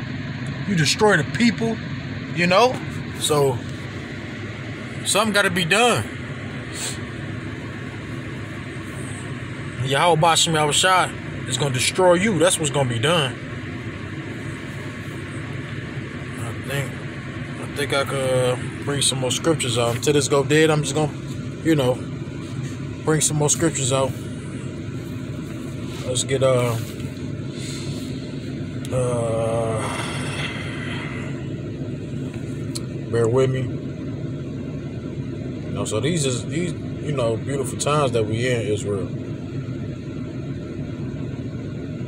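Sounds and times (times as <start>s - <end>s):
car cabin engine hum: 0.0s - 42.0s.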